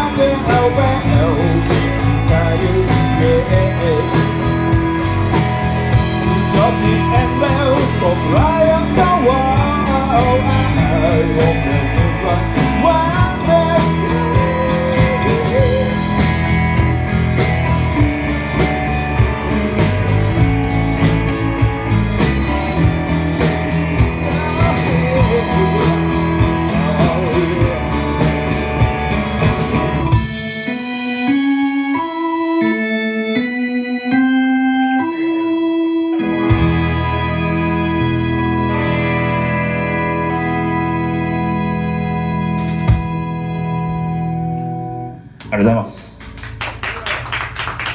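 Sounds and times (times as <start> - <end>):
person singing: 0.0 - 5.0, 6.1 - 16.3, 24.0 - 28.8
drums: 0.0 - 32.3, 36.2 - 47.9
keyboard playing held notes: 0.0 - 45.8
bass guitar: 0.0 - 47.9
electric guitar: 0.0 - 47.9.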